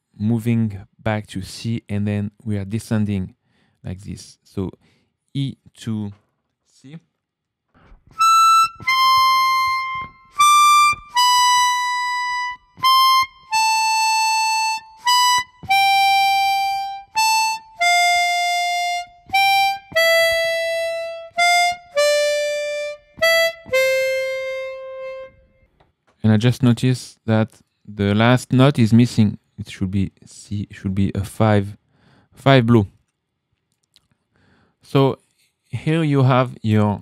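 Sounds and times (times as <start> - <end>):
harmonica playing notes: 8.1 - 25.6.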